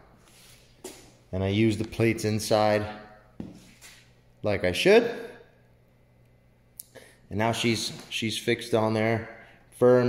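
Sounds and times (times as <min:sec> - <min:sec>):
man speaking: 0:01.3 - 0:03.2, 0:07.3 - 0:10.0.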